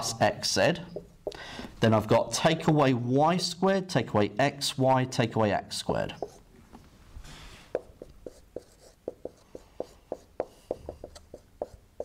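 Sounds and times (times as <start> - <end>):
marker squeaking on whiteboard: 0.7 - 1.4, 5.9 - 6.4, 7.7 - 12.0.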